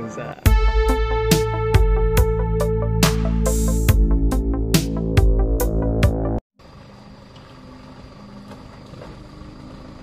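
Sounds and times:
electronic intro music: 0.0s - 6.4s.

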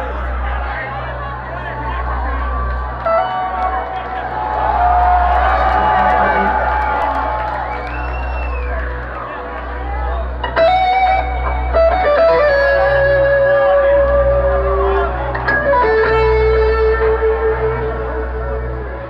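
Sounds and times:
audience chatter: 0.0s - 19.0s
electric guitar melody: 2.8s - 4.3s, 5.3s - 19.0s.

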